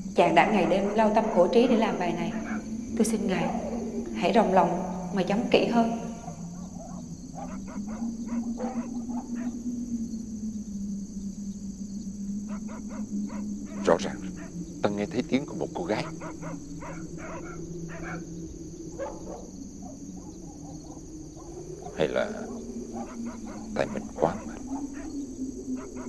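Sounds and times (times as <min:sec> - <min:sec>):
crickets chirping: 0:00.0 - 0:26.0
dogs barking: 0:00.4 - 0:03.9, 0:06.0 - 0:09.6, 0:12.5 - 0:18.3, 0:18.9 - 0:26.0.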